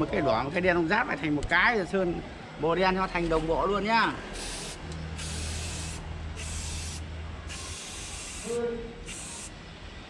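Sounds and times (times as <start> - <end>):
spray paint can hissing: 4.4 - 9.6.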